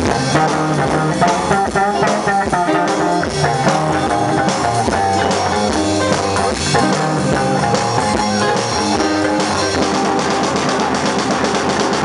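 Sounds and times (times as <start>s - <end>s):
electric guitar melodic lines: 0.0s - 12.0s
rockabilly band playing: 0.0s - 12.0s.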